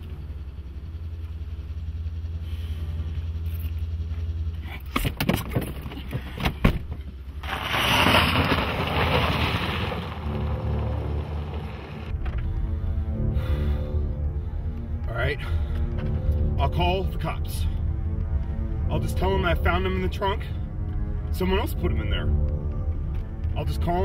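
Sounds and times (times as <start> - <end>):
tyres rushing on gravel: 7.4 - 12.1
car engine running: 8.5 - 13.2.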